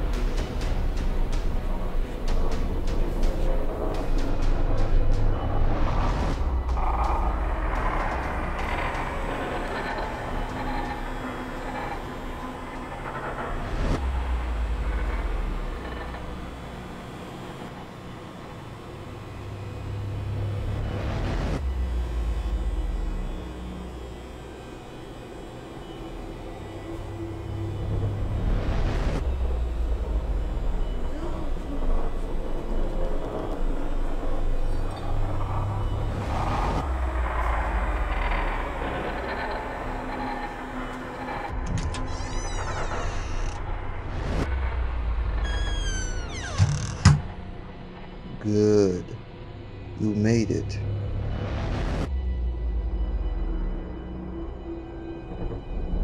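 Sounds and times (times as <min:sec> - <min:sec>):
dark noisy ambience: 0:00.0 - 0:56.0
deep rumbling drone: 0:00.0 - 0:56.0.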